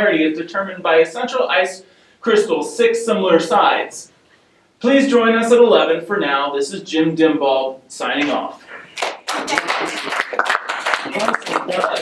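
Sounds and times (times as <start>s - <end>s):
group of people clapping: 8.8s - 12.0s.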